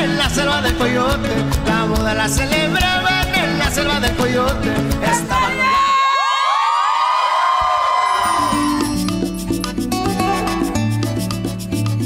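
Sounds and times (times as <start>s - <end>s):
salsa music: 0.0s - 6.2s, 7.8s - 12.0s
crowd cheering and whooping: 5.3s - 9.1s.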